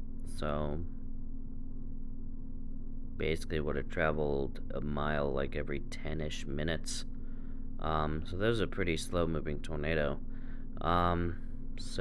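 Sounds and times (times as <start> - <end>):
steady low hum: 0.0 - 12.0
person speaking: 0.3 - 0.8, 3.2 - 7.0, 7.8 - 10.2, 10.8 - 12.0.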